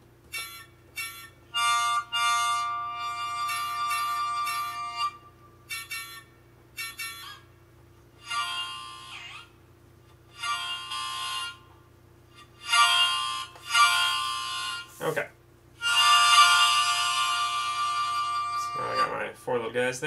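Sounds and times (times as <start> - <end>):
harmonica chords: 0.0 - 15.2, 15.8 - 19.8.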